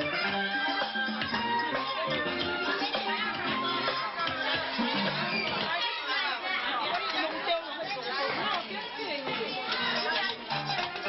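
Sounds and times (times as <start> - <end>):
crowd of women chattering: 0.0 - 11.0.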